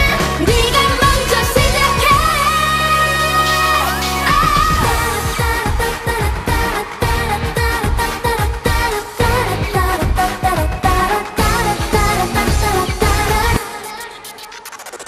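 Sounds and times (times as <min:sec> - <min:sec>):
women singing over dance beat: 0:00.0 - 0:14.9.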